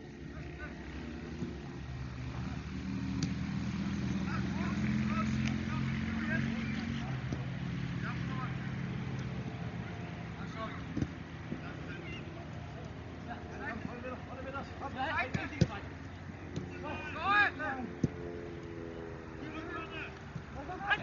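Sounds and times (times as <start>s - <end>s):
motor engine drone: 15.8s - 20.6s.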